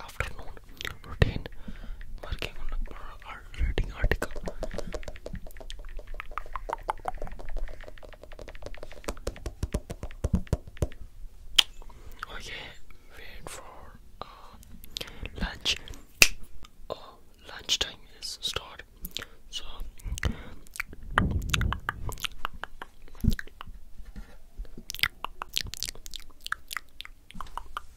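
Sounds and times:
person whispering: 0:00.0 - 0:01.6, 0:02.2 - 0:05.9, 0:12.1 - 0:16.0, 0:16.9 - 0:23.7.

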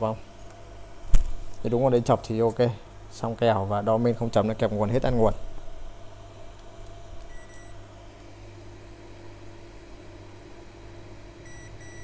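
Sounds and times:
steady low hum: 0:00.0 - 0:12.0
person speaking: 0:01.6 - 0:05.4
multimeter continuity beep: 0:07.3 - 0:07.8, 0:11.4 - 0:12.0.

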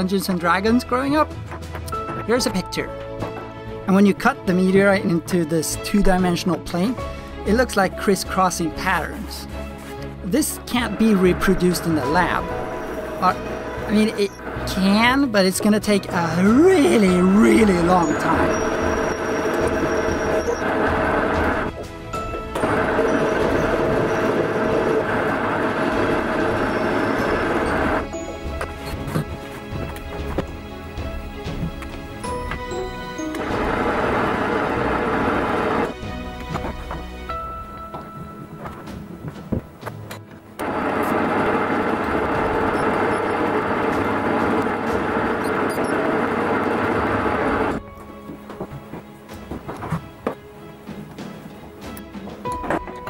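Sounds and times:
metal lathe machining: 0:11.3 - 0:29.6, 0:32.4 - 0:36.0, 0:40.6 - 0:47.8.

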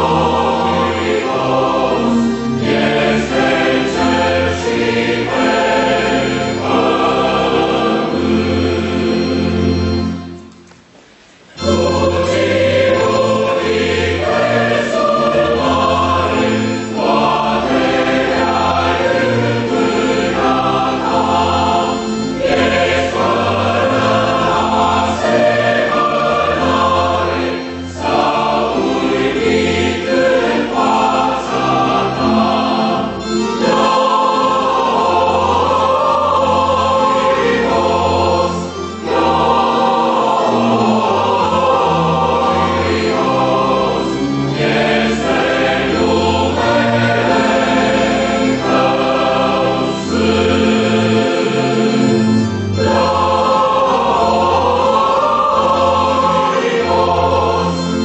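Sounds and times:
mixed choir singing a hymn: 0:00.0 - 0:10.4, 0:11.5 - 0:58.0.

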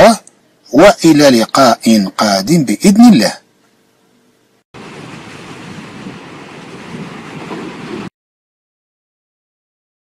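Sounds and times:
steady rushing noise: 0:04.8 - 0:08.1.

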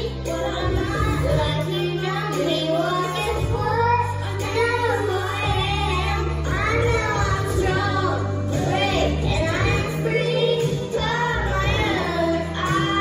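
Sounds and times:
girl singing into a microphone: 0:00.0 - 0:13.0
instrumental backing with bass: 0:00.0 - 0:13.0.

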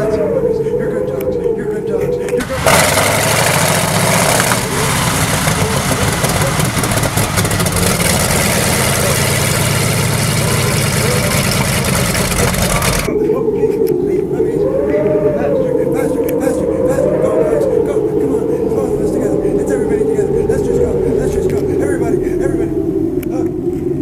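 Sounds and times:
snowmobile engine droning: 0:01.7 - 0:13.8.

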